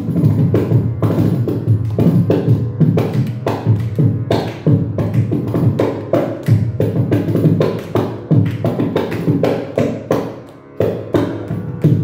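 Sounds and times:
mridangam rhythmic strokes: 0:00.0 - 0:12.0.

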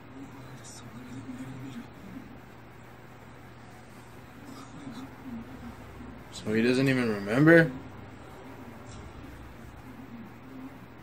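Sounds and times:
faint male voice from speakers: 0:00.0 - 0:02.5
room hiss: 0:00.0 - 0:11.0.

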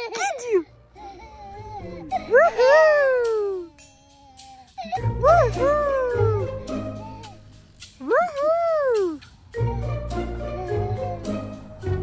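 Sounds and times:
toddler squealing: 0:01.0 - 0:09.2.

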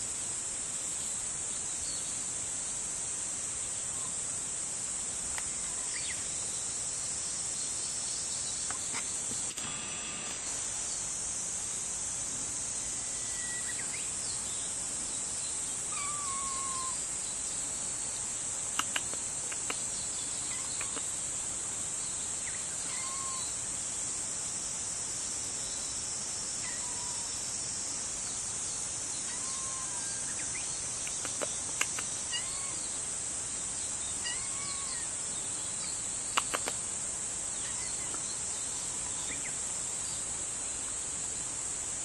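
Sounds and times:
insects droning: 0:00.0 - 0:42.0
kitten meowing: 0:16.0 - 0:17.0, 0:22.9 - 0:23.5, 0:29.3 - 0:30.2, 0:32.3 - 0:32.8, 0:34.2 - 0:35.1
short sharp clicks: 0:18.8 - 0:19.8.

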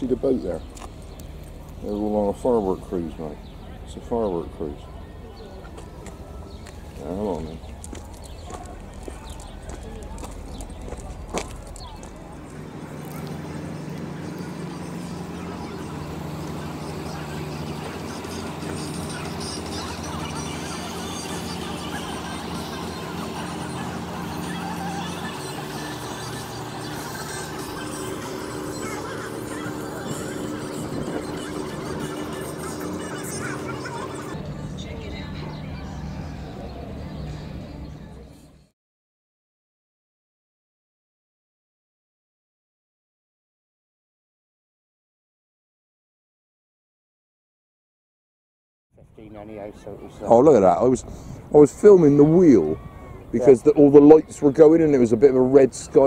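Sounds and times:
steady low hum: 0:00.0 - 0:38.6
distant voices: 0:00.0 - 0:38.7, 0:49.0 - 0:56.0.

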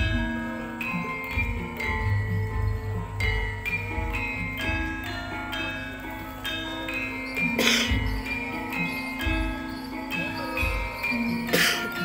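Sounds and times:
gamelan playing: 0:00.0 - 0:12.0.

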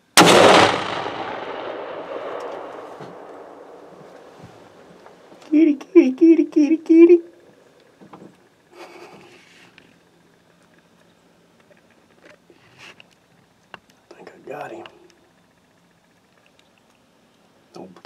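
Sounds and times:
loud sound: 0:00.1 - 0:05.5.

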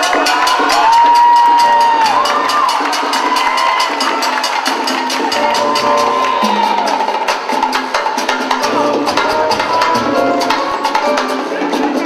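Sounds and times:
audience cheering: 0:00.0 - 0:11.7
conga and bongo drums: 0:00.0 - 0:12.0
salsa band: 0:00.0 - 0:12.0.

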